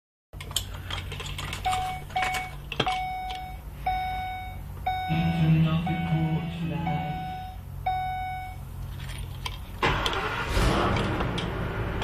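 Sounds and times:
steady low hum: 0.4 - 12.0
dashboard warning chime beeping: 1.6 - 8.7.

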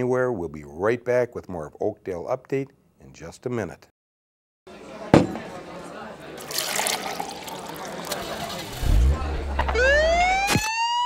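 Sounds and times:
liquid pouring and fizzing: 6.4 - 8.9
deep low rumble: 8.7 - 10.4
police siren winding up: 9.5 - 11.0.

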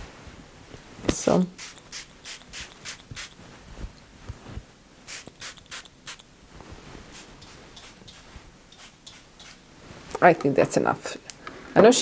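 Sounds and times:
spray bottle spritzing: 1.6 - 3.4, 5.1 - 6.2, 7.1 - 9.6.

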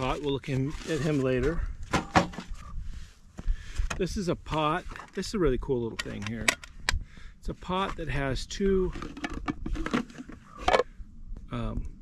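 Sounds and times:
camp pots clicking and knocking: 1.9 - 2.6, 3.9 - 7.0, 8.8 - 10.9.

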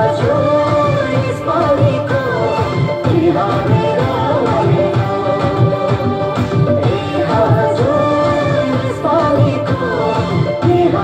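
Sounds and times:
person singing folk melody: 0.0 - 11.0.

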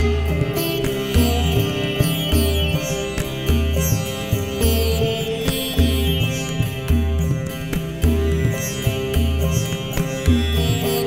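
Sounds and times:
plucked sitar: 0.0 - 11.0
tabla: 0.0 - 11.0.

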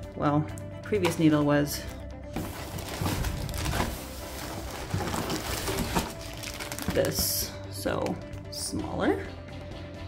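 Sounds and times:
soft music: 0.0 - 10.0
plastic wrap rustling: 2.4 - 7.2.

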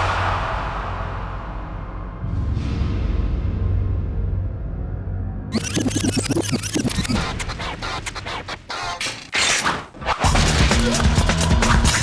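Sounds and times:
music: 0.0 - 9.3, 10.0 - 12.0
vinyl record scratching: 5.5 - 9.3.

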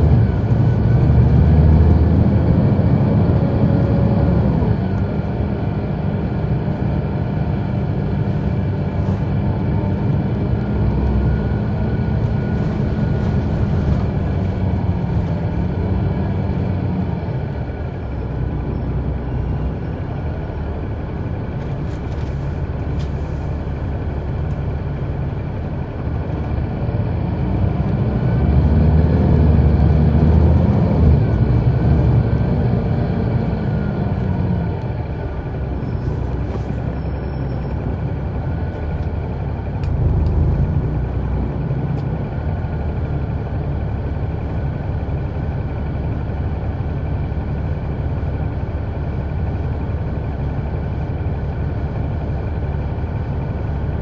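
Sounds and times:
bus diesel engine under load: 0.0 - 54.0.

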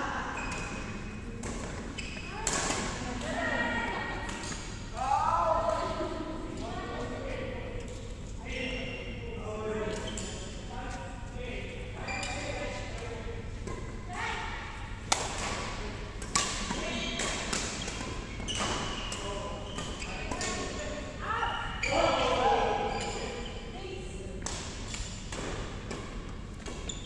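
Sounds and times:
voices in gym hall: 0.0 - 27.0.

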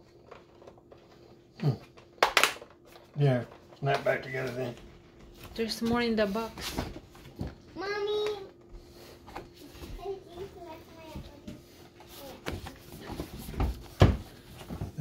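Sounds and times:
child's voice: 7.7 - 8.6, 9.6 - 12.6.

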